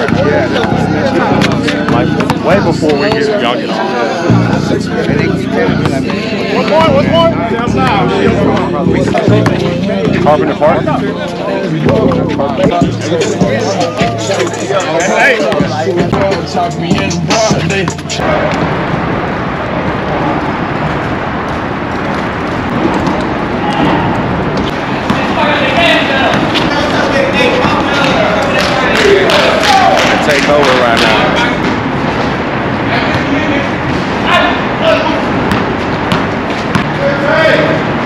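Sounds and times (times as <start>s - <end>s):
basketballs bouncing on court: 0.0s - 2.5s, 20.4s - 34.1s, 35.0s - 37.0s
people talking and calling out: 0.0s - 38.0s
steady background noise: 0.0s - 38.0s.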